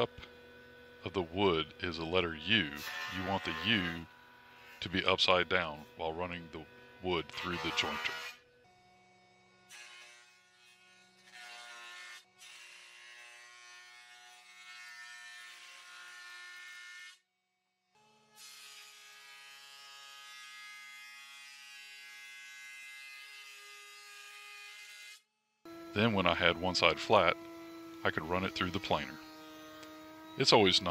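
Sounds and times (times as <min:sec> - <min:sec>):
jointer motor whine: 0:25.7 - 0:30.9.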